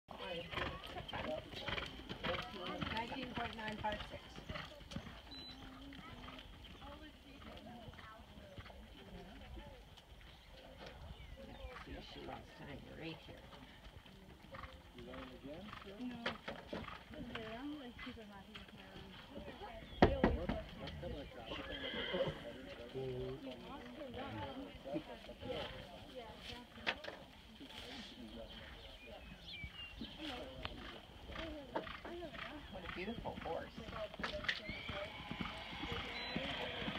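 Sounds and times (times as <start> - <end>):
horse hoofbeats on dirt: 0.1 - 36.9
people talking quietly: 0.1 - 36.9
people calling: 28.8 - 36.9.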